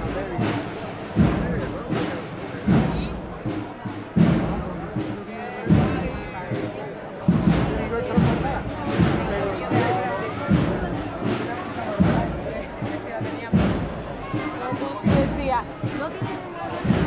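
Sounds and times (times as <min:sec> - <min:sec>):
crowd voices: 0:00.0 - 0:17.0
drums beating slow march: 0:00.0 - 0:17.0.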